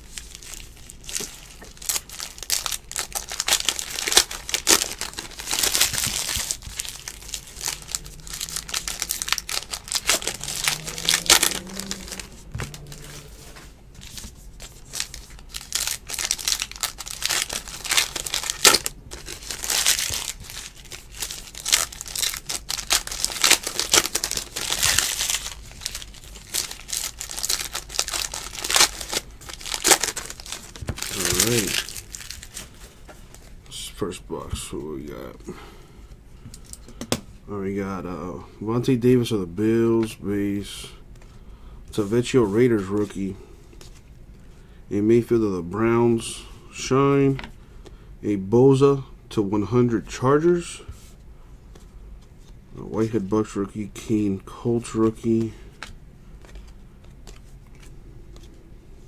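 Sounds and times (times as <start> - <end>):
wrappers crinkling and tearing: 0.0 - 33.6
cards rustling: 0.1 - 33.6, 54.7 - 58.6.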